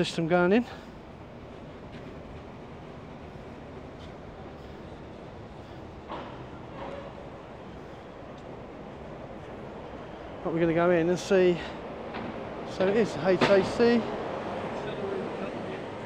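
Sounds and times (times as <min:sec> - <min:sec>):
urban background rumble: 0:00.0 - 0:16.0.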